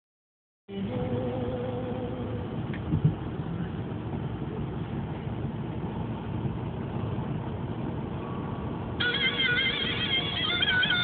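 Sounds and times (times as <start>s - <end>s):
road and engine noise in car: 0.7s - 11.0s
music with sliding melody: 9.0s - 11.0s.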